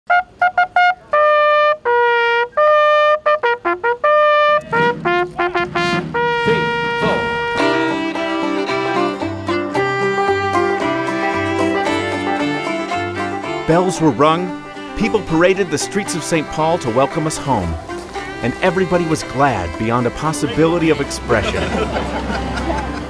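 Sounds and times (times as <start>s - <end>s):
bugle call: 0.1s - 9.3s
music track with stepping bass: 2.8s - 23.0s.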